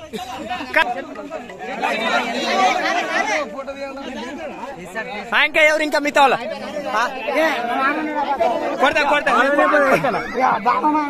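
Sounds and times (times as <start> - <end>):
crowd of men talking: 0.0 - 11.0.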